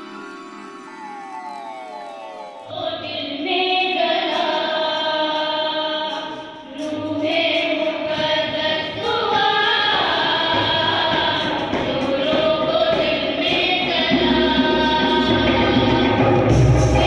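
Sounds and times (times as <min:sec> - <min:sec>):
women singing a hymn: 0:02.6 - 0:17.0.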